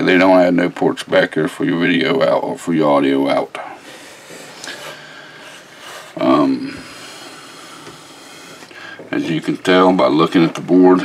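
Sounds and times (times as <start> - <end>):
low room noise hiss: 0.0 - 11.0.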